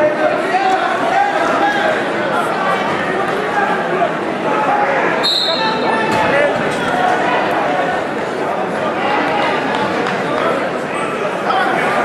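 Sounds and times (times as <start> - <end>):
spectators' voices: 0.0 - 12.0
high referee whistle blast: 5.2 - 5.8.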